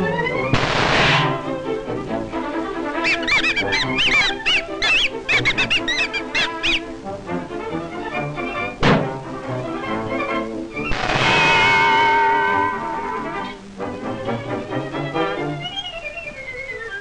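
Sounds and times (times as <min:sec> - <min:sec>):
cartoon soundtrack music: 0:00.0 - 0:17.0
squeaky whistle notes: 0:03.0 - 0:06.9, 0:10.7 - 0:13.5, 0:15.4 - 0:17.0
thunk: 0:08.8 - 0:09.2.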